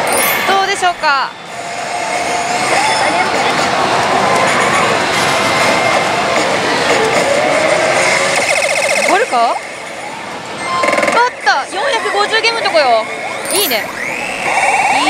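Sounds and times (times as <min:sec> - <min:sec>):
pachislot machine effect sounds: 0:00.0 - 0:01.3, 0:13.4 - 0:15.0
din of slot parlour: 0:00.0 - 0:15.0
wavering electronic tones: 0:13.0 - 0:15.0
fast electronic beeps: 0:13.3 - 0:15.0.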